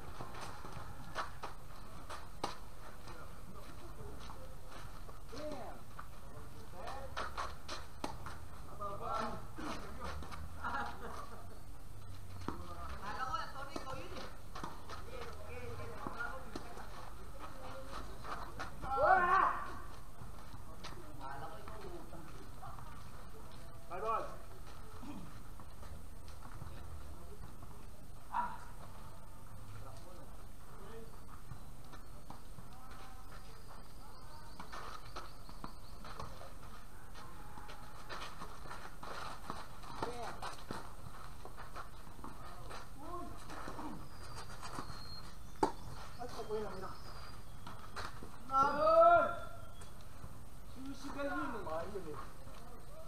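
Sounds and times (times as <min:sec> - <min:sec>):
players calling out: 0:47.9 - 0:50.0.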